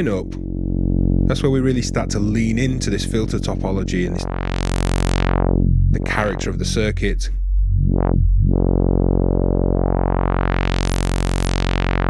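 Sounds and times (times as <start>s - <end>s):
overdriven synth drone: 0.0s - 12.0s.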